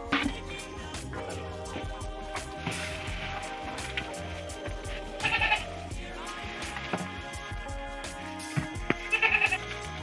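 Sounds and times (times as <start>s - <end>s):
background music with steady beat: 0.0s - 10.0s
goat bleating: 5.1s - 5.9s, 8.8s - 10.0s.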